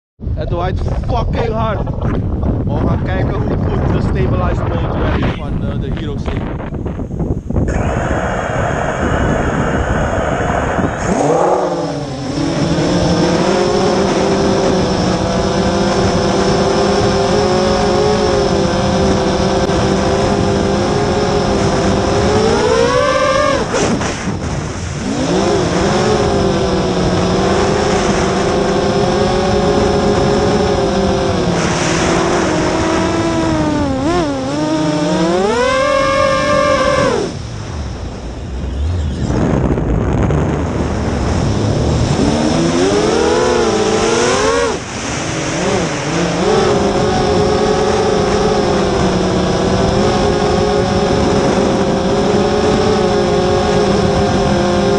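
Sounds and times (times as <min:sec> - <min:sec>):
wind noise on microphone: 0:00.2 - 0:54.9
drone motors whining: 0:07.5 - 0:24.0, 0:25.0 - 0:54.9.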